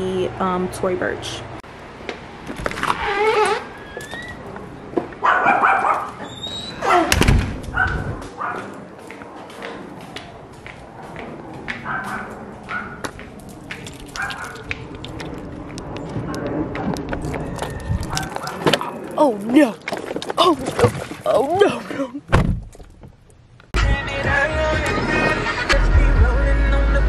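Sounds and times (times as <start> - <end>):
dog whining and yipping: 5.3 - 7.2
loud thump: 7.1 - 7.6, 22.3 - 22.7.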